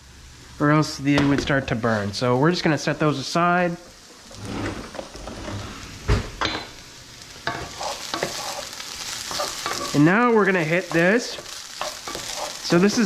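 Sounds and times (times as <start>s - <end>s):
vegetables sizzling in oil: 0.0s - 13.0s.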